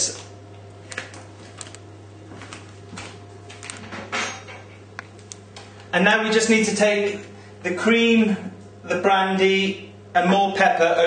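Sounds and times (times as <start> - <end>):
steady low hum: 0.0 - 11.0
utensils knocking on worktop: 3.8 - 4.8.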